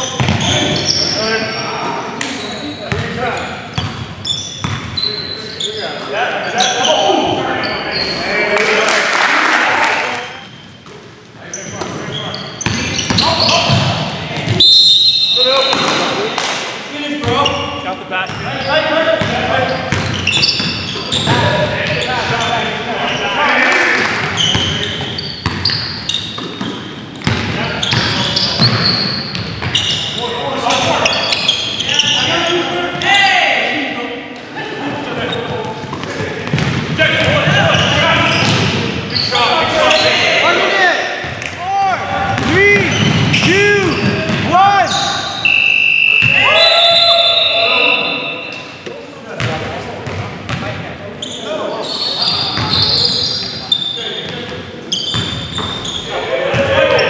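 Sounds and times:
sneakers squeaking: 0.0s - 8.5s, 10.1s - 33.7s, 34.3s - 57.0s
indistinct voices echoing: 0.0s - 57.0s
basketball bouncing: 0.2s - 0.5s, 2.9s - 3.1s, 4.6s - 4.9s, 12.6s - 14.6s, 25.4s - 29.8s, 35.9s - 38.8s, 42.3s - 44.5s, 49.4s - 50.6s.

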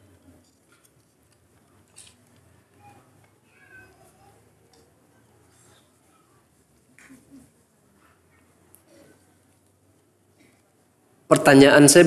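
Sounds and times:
faint high-pitched cry: 2.7s - 4.8s.

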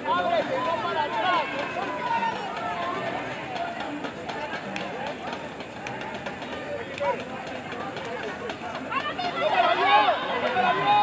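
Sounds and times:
voices shouting: 0.0s - 7.6s, 8.2s - 11.0s.

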